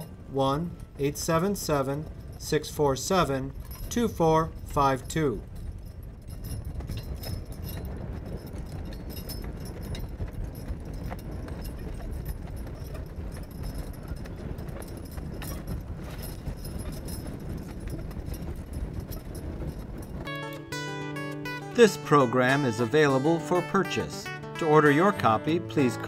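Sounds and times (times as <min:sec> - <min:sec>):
harness chains jingling: 0:00.0 - 0:26.0
hooves clopping on dirt: 0:00.0 - 0:26.0.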